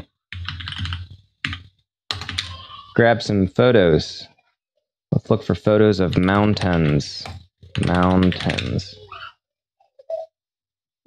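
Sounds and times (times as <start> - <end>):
computer keyboard typing: 0.0 - 2.6, 6.0 - 8.8.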